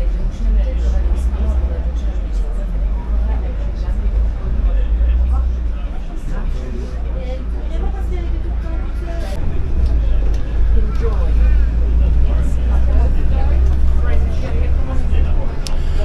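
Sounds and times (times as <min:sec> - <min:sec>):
bus engine rumble: 0:00.0 - 0:16.0
passengers talking: 0:00.0 - 0:16.0.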